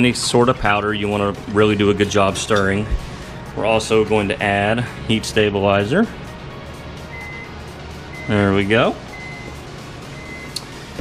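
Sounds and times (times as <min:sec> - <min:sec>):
high electronic beeping: 0:09.1 - 0:10.6.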